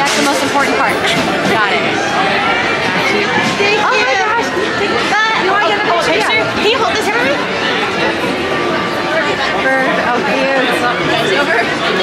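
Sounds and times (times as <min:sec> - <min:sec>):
crowd babble: 0:00.0 - 0:12.0
people talking: 0:00.0 - 0:12.0.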